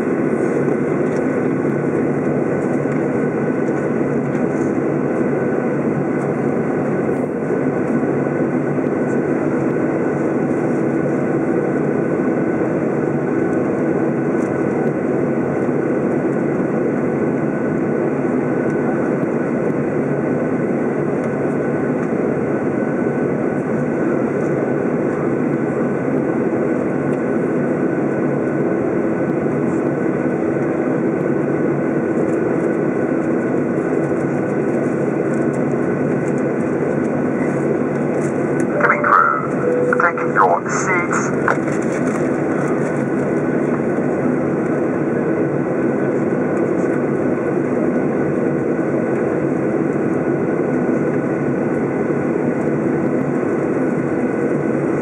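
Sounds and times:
jet engine rumble in cabin: 0.0 - 55.0
steady high engine tones: 38.5 - 42.8.

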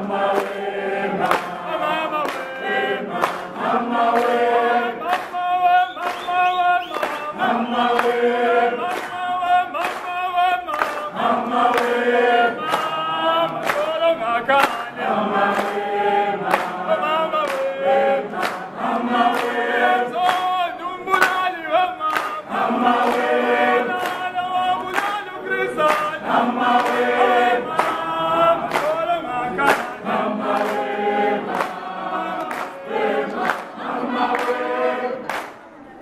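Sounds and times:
group of voices singing: 0.0 - 36.0.

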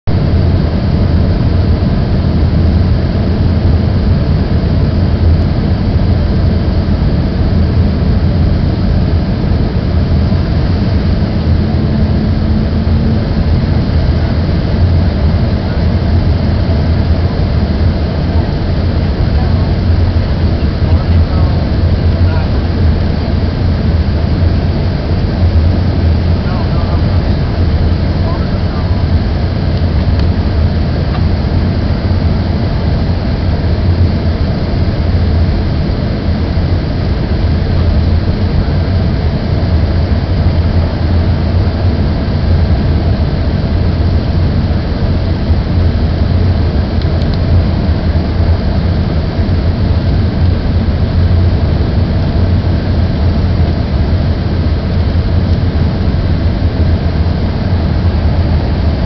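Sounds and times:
jet cabin engine rumble: 0.0 - 59.0.

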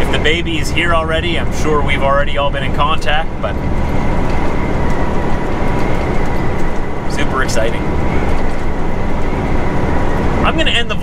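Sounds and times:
faint high whine: 0.0 - 11.0
truck engine and road noise: 0.0 - 11.0.

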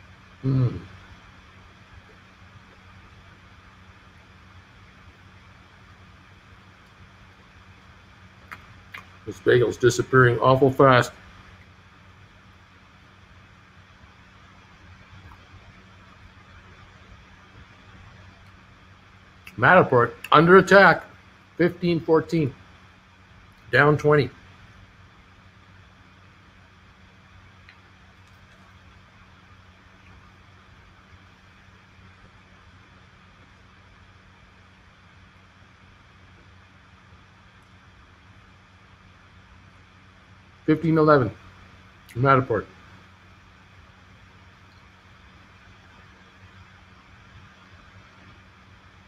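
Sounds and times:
faint low hum and hiss: 0.0 - 49.0.

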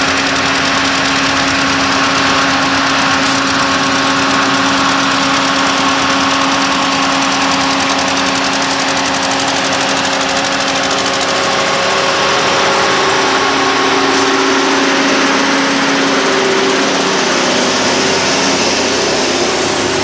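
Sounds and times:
tractor and truck engines droning: 0.0 - 20.0.

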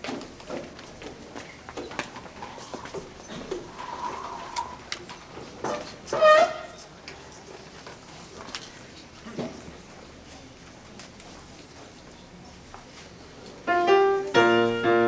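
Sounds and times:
audience rustling and shuffling: 0.0 - 15.0.

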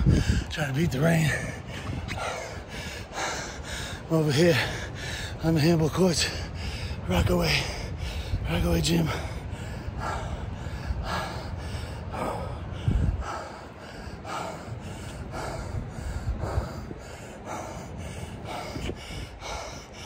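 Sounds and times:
man breathing hard: 0.0 - 0.6, 1.2 - 20.0.

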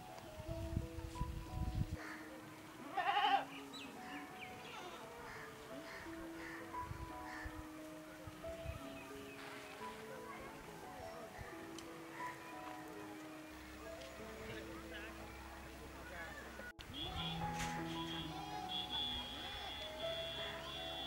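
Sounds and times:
soft background music: 0.0 - 21.0
goat bleating: 2.9 - 3.5.

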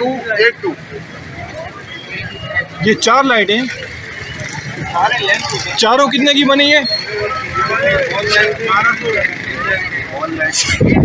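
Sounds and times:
people talking: 0.0 - 11.0
street market noise: 0.0 - 11.0.

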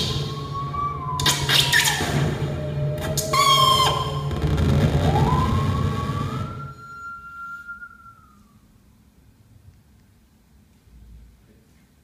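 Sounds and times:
bowed musical saw tone: 0.0 - 9.0.

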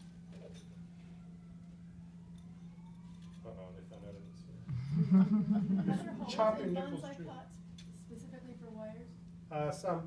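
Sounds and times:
faint tone rising in pitch: 0.0 - 5.1.

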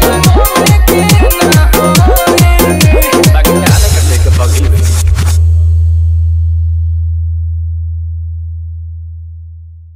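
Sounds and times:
deep electronic bass tone: 0.0 - 9.9.

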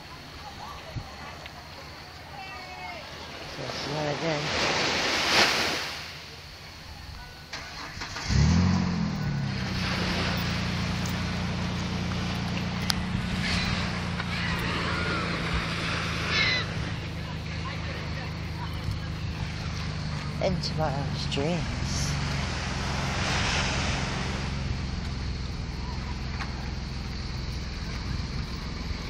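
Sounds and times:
vehicle engine starting and idling: 7.4 - 29.0
rush of noise: 21.0 - 26.3.

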